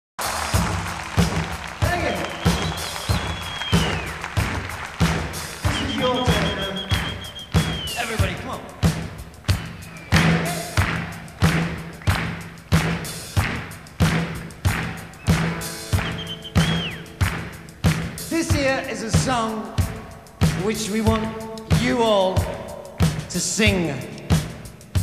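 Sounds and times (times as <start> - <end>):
rock drum kit beat: 0.2 - 25.0
long high whistle: 2.1 - 4.3, 5.5 - 8.3, 9.6 - 10.8, 15.1 - 17.2.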